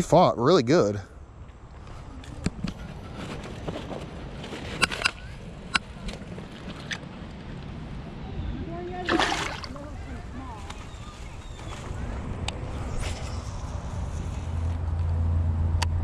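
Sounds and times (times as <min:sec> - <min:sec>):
fish splashing: 0:09.0 - 0:10.3
shallow water sloshing: 0:09.0 - 0:11.4.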